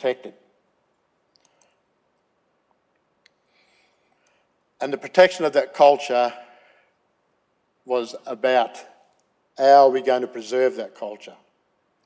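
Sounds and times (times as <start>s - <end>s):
faint clicks: 0.9s - 1.8s.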